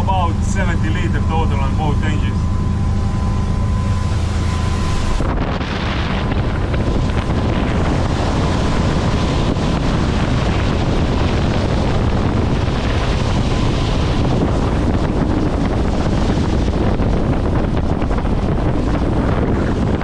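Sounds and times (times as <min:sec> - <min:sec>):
boat bow wave and spray: 0:00.0 - 0:20.0
wind buffeting microphone: 0:00.0 - 0:20.0.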